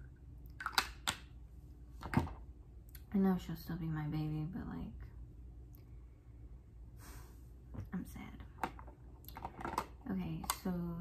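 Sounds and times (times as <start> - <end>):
plastic containers clicking and knocking: 8.6 - 10.6.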